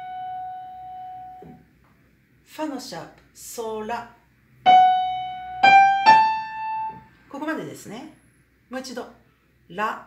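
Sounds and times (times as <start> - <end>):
high piano note: 0.0 - 1.6, 4.7 - 7.1.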